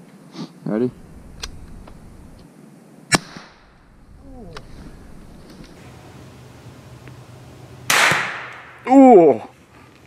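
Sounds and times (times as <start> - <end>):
rifle shot cracking: 7.9 - 8.8.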